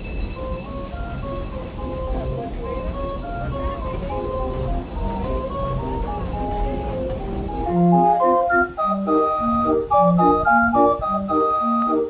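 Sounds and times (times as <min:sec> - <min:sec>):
faint music: 0:00.0 - 0:12.0
pipe organ playing bouncy tune: 0:00.0 - 0:12.0
train cars rumbling past: 0:00.0 - 0:12.0.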